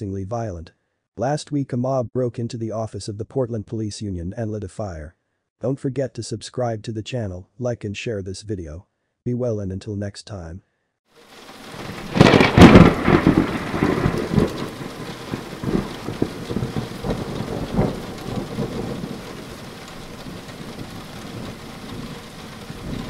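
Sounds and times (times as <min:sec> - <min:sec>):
steady rain: 0:11.2 - 0:23.0
thunderclap with rolling rumble: 0:11.5 - 0:23.0.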